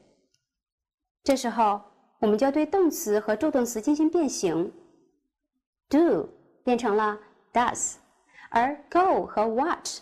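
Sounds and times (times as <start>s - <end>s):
woman speaking: 1.3s - 4.8s, 5.9s - 10.0s.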